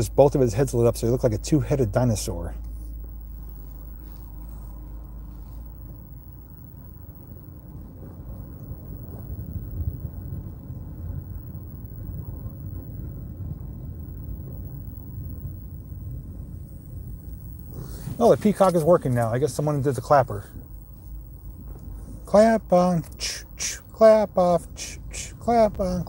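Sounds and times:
car driving slowly rumble: 0.0s - 26.0s.

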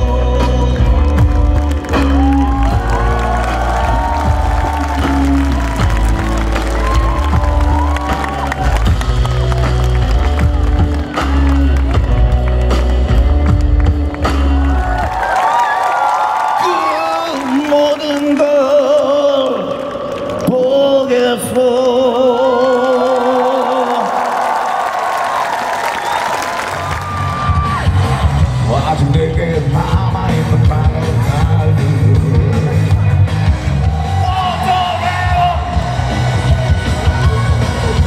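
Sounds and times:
man singing: 0.0s - 5.3s, 16.6s - 24.3s, 28.6s - 36.0s
live pop band with heavy bass: 0.0s - 24.2s, 26.6s - 38.0s.

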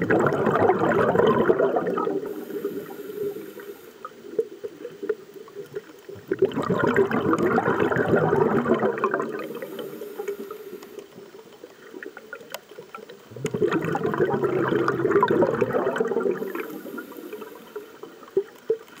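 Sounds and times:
exhaled breath bubbling underwater: 0.0s - 11.4s, 13.3s - 18.6s
faint clicks: 9.6s - 13.6s.

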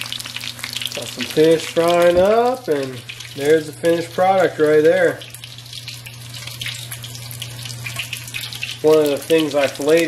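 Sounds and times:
fish frying in hot oil: 0.0s - 10.0s
low steady hum: 0.0s - 10.0s.

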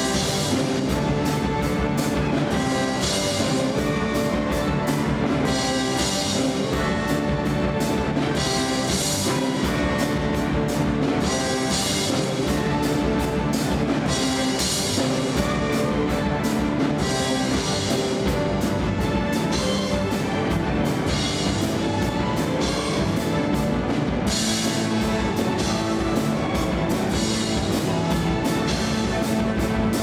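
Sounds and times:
bowed cellos and strings: 0.0s - 30.0s
rock drum kit: 0.0s - 30.0s.

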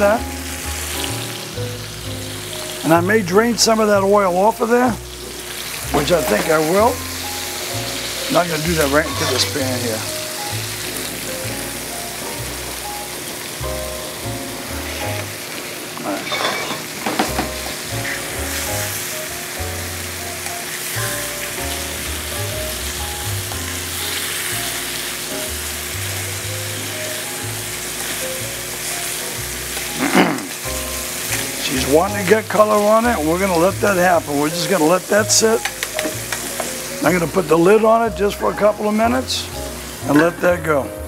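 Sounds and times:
background music with bass line: 0.0s - 15.4s, 17.3s - 41.0s
meat sizzling in a frying pan: 0.0s - 40.6s.

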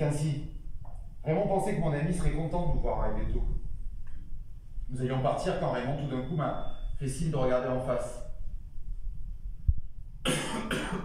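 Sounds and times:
harsh coughs: 10.2s - 11.0s.

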